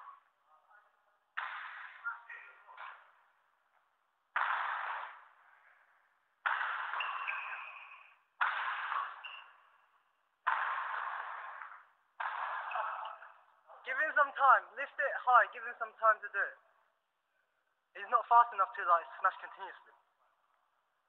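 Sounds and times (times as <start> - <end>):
badminton racket smashing shuttlecock: 1.4 - 2.0, 4.3 - 5.3, 6.4 - 9.5, 10.4 - 13.2.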